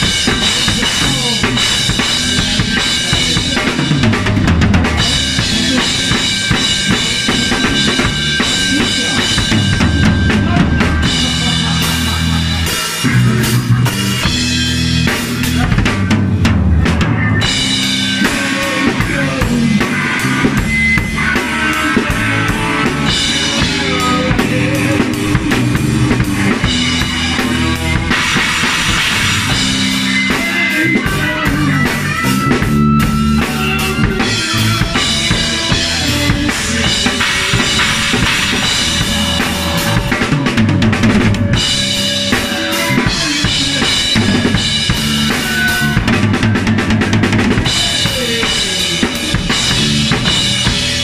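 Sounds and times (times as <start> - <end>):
bass line: 0.0 - 51.0
drum kit beat: 0.0 - 51.0
electric guitar lead notes: 0.0 - 51.0.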